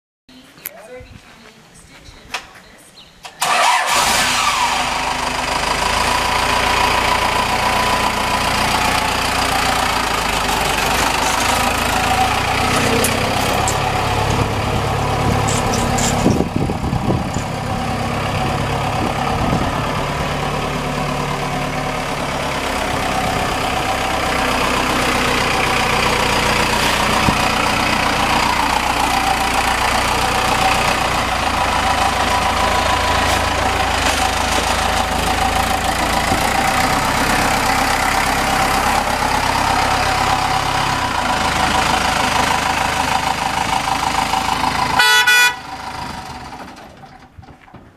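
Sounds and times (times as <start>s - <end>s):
diesel truck engine running: 3.4s - 47.9s.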